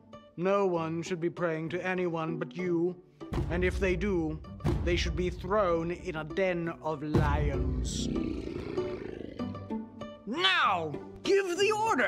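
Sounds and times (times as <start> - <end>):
background music: 0.0 - 12.0
lion roar: 7.6 - 9.6.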